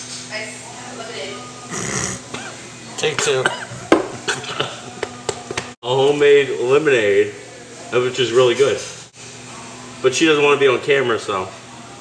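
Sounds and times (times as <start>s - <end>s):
slurping through a straw: 1.7s - 2.2s
man snorting laugh: 1.7s - 2.6s, 3.6s - 4.8s.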